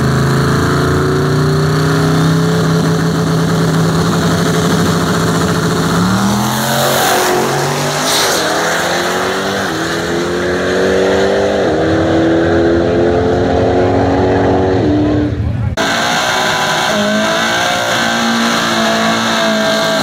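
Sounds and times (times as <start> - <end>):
drag racing engines accelerating: 0.0 - 20.0.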